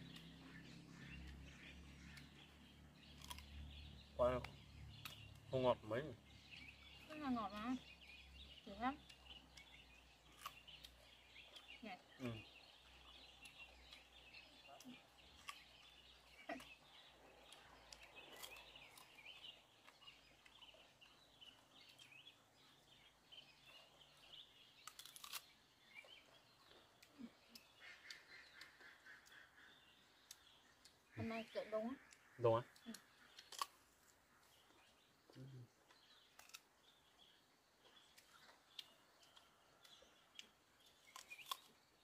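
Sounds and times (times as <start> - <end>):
birds chirping: 0.0 - 42.0.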